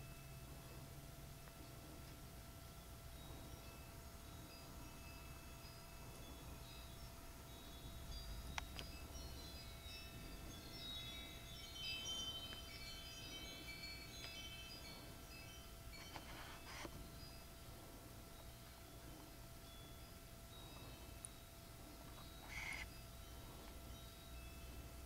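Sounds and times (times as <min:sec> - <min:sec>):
steady hum and hiss: 0:00.0 - 0:25.0.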